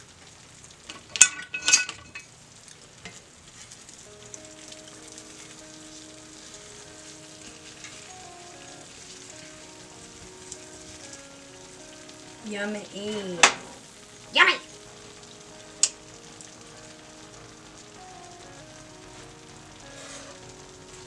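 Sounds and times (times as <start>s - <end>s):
casserole sizzling faintly: 0.0s - 21.0s
utensil clinking against dish: 1.2s - 2.3s
quiet background music: 3.2s - 21.0s.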